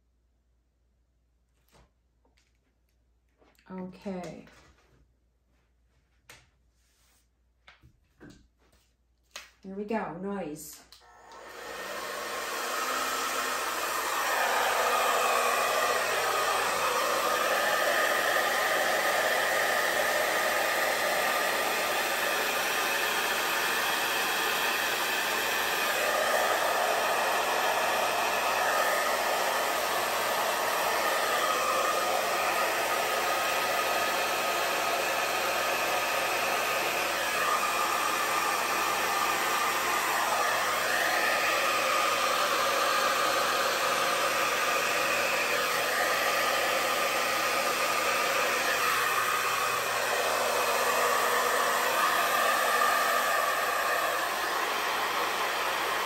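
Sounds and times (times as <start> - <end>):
hair dryer blowing: 9.3 - 56.0.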